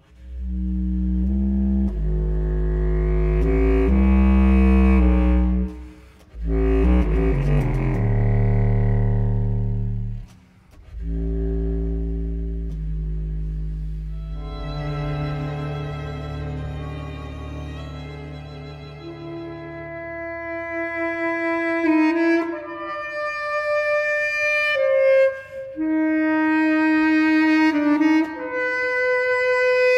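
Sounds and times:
ensemble playing low chords: 0.0s - 20.8s
contrabass clarinet bass line: 0.0s - 29.9s.

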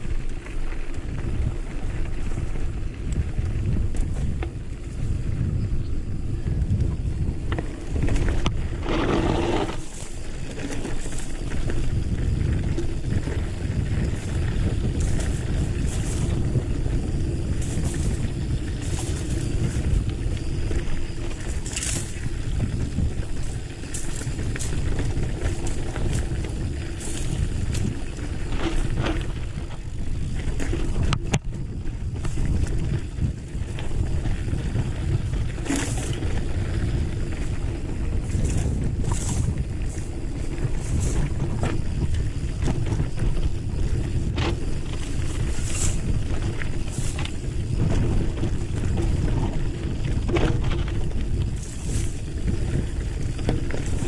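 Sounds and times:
bike clicks and rattles: 0.0s - 54.0s
tyres rumbling on dirt trail: 0.0s - 54.0s
wind buffeting microphone: 0.0s - 54.0s.

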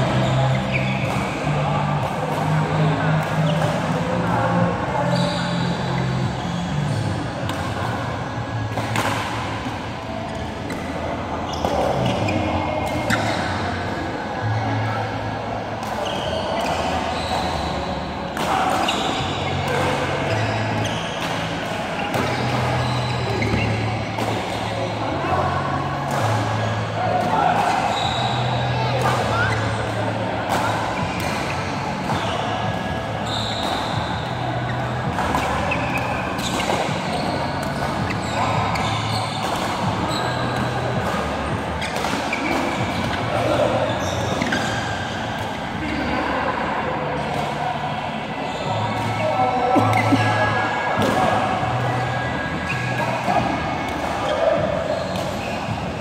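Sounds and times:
players' voices: 0.0s - 56.0s
rackets hitting shuttlecock: 0.1s - 4.5s, 6.9s - 14.0s, 15.8s - 25.0s, 25.8s - 45.7s, 50.9s - 55.9s.

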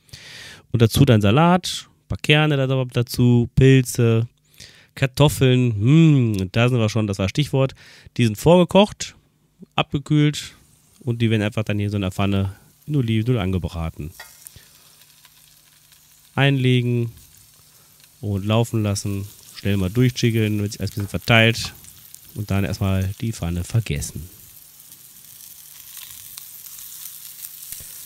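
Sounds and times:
potatoes sizzling in oil: 10.6s - 28.0s.

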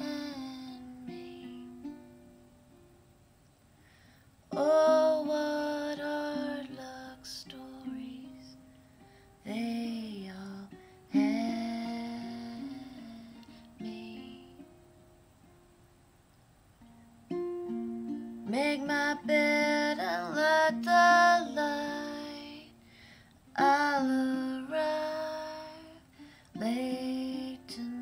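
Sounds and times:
woman singing: 0.0s - 1.9s, 4.5s - 8.6s, 9.4s - 14.8s, 18.4s - 22.9s, 23.5s - 28.0s
plucked acoustic strings: 16.8s - 22.8s.

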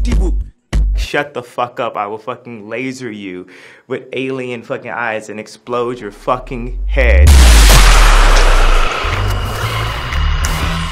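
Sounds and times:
music: 0.0s - 1.2s, 7.2s - 10.9s
distorted laser and explosion effect: 6.9s - 10.9s.

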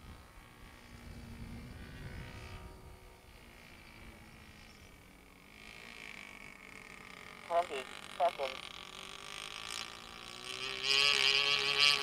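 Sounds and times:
model airplane engine buzzing: 0.0s - 12.0s.

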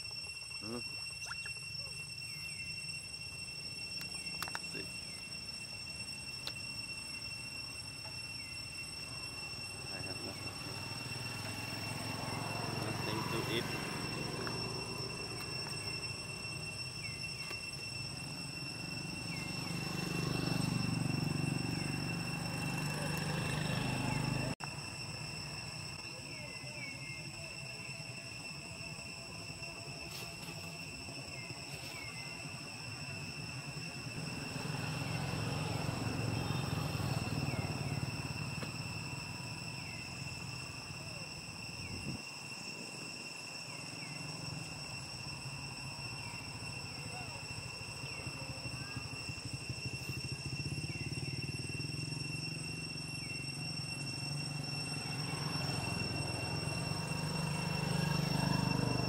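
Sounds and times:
insects droning: 0.0s - 59.0s.

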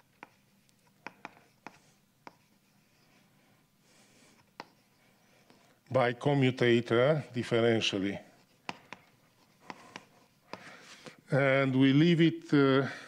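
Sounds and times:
chalk tapping on blackboard: 0.0s - 2.8s, 4.3s - 5.0s, 8.4s - 10.8s.

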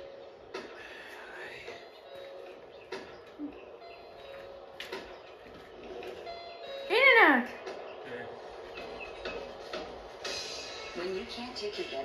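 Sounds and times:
high voiced sound from television: 0.0s - 12.0s.

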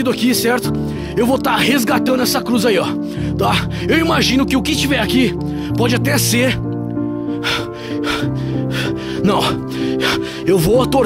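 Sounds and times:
sustained low chords music: 0.0s - 11.0s
breathy gasps: 3.0s - 3.9s, 7.2s - 10.5s.

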